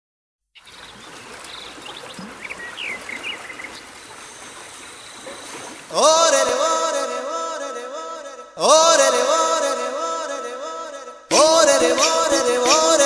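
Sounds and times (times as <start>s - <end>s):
steady outdoor hiss: 0.6s - 6.0s.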